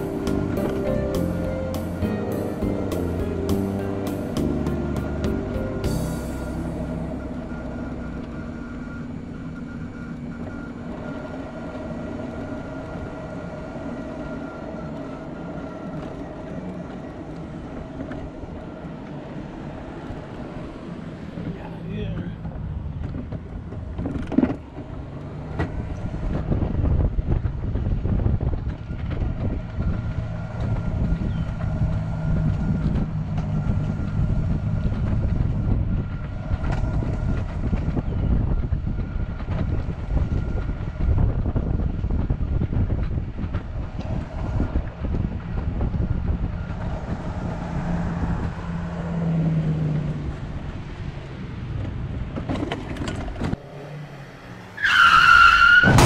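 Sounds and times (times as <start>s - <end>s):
rising sound effect ending in burst: 0.0s - 9.0s.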